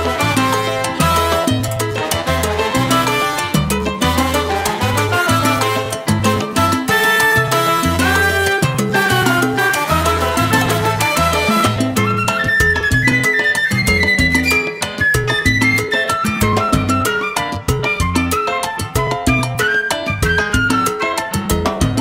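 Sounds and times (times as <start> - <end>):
salsa music: 0.0 - 22.0.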